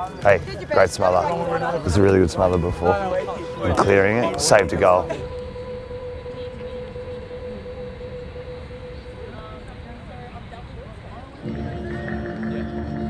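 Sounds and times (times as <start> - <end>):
low outdoor rumble: 0.0 - 13.0
steady held tone: 0.8 - 13.0.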